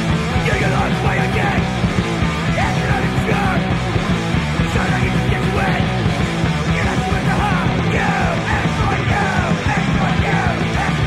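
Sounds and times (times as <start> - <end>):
hardcore punk song: 0.0 - 11.0.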